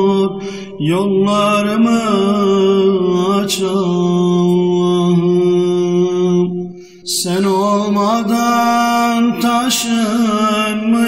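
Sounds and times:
low vocal drone: 0.0 - 11.0
man singing a long note: 0.0 - 11.0.

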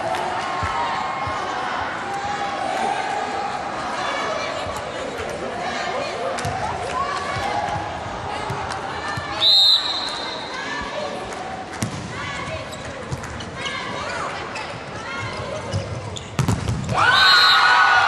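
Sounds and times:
referee's whistle: 9.4 - 10.5
sneaker squeaks on court: 12.6 - 16.9
volleyball strikes: 15.8 - 17.1
crowd cheering: 16.9 - 18.0.

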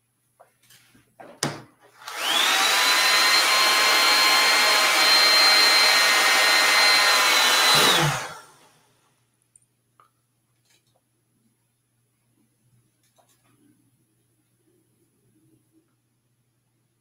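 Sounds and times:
hair dryer switch click: 2.0 - 2.3
hair dryer motor whine: 2.0 - 8.8.

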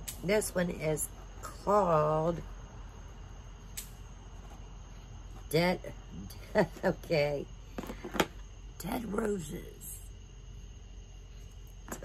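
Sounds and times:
steady high-pitched whine: 0.0 - 12.0.

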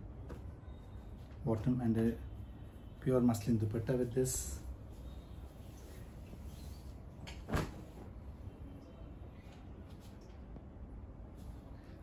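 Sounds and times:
low steady hum: 0.0 - 12.0.

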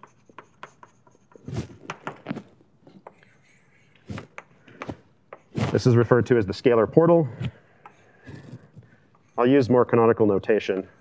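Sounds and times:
chalk scratching on blackboard: 0.0 - 6.1, 7.4 - 9.7.

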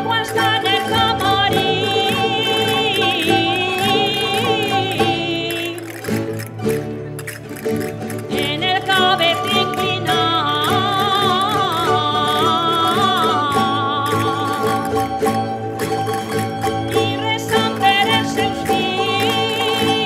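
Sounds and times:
high wavering melody: 0.0 - 6.4
plucked strings steady beat: 0.0 - 20.0.

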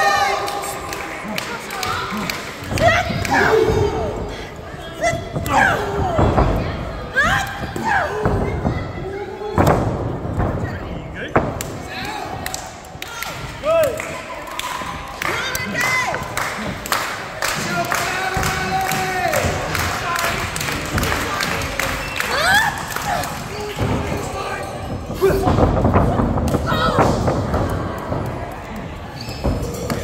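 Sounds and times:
people shouting and whooping: 21.8 - 24.6.

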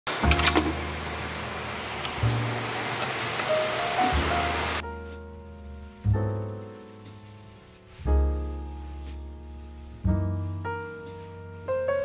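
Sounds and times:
piano music: 0.1 - 12.0
steam hissing from pressure cooker: 1.2 - 4.8.

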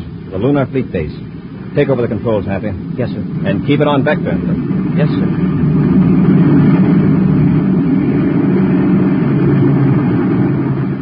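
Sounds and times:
spaceship rocket engine rumble: 0.0 - 11.0.

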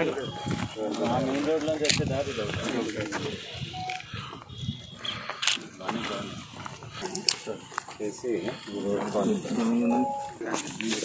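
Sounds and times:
people talking outdoors: 0.0 - 11.0.

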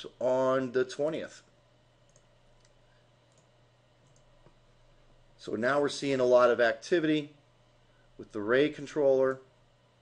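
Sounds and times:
low room hum: 0.0 - 10.0
computer mouse click: 2.1 - 4.6.

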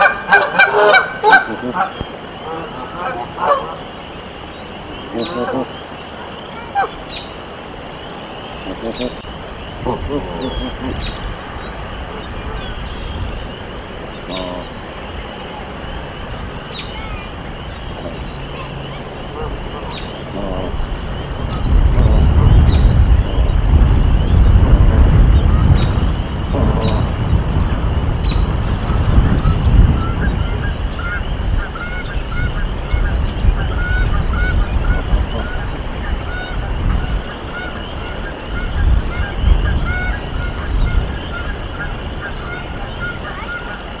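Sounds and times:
goose honking softly: 0.0 - 4.0, 4.9 - 7.2, 8.5 - 44.0
goslings peeping: 0.0 - 44.0
low rumbling noise: 0.0 - 44.0.

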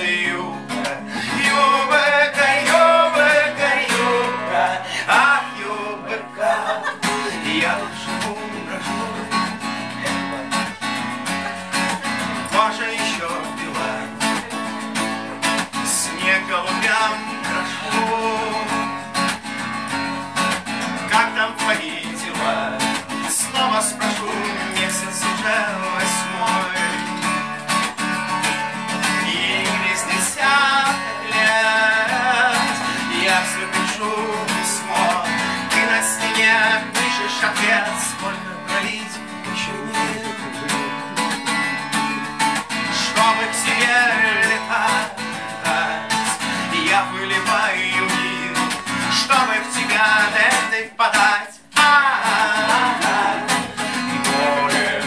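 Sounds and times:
man singing wordlessly: 0.0 - 19.6, 20.4 - 55.0
acoustic guitar strumming: 0.0 - 55.0.

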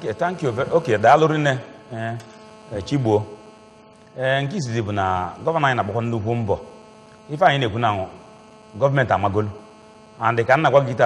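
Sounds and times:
man speaking: 0.0 - 3.4, 4.2 - 6.7, 7.3 - 9.6, 10.2 - 11.0
electrical mains hum: 0.0 - 11.0.

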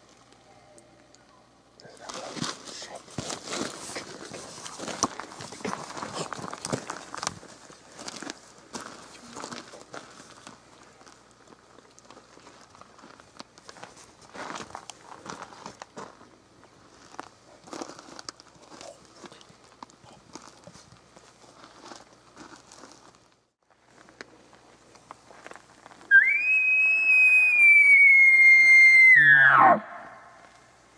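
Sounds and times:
footsteps crunching on ground: 1.9 - 26.1.

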